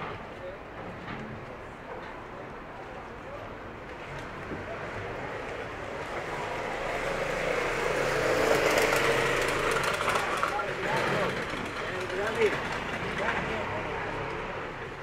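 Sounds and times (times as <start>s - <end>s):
passersby talking: 1.6s - 15.0s.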